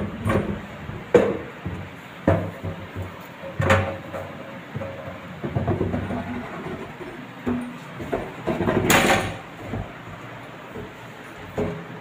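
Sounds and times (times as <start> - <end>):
cupboard fittings rattling and scraping: 2.3 - 10.3.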